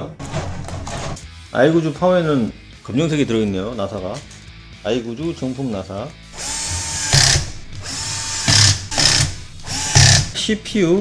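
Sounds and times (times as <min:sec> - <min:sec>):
drill driving screws into steel: 0:06.4 - 0:10.3.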